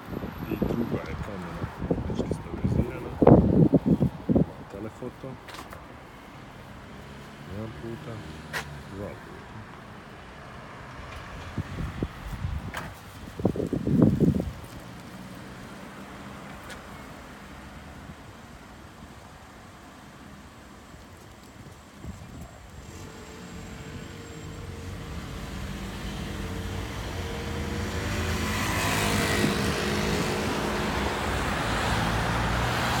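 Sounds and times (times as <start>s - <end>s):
car engines and tyre noise: 0.0s - 33.0s.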